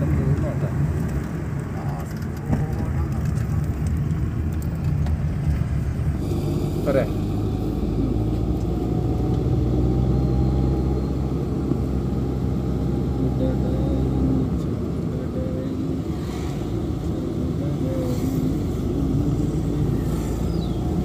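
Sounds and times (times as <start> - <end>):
vehicle engine and road noise: 0.0 - 21.0.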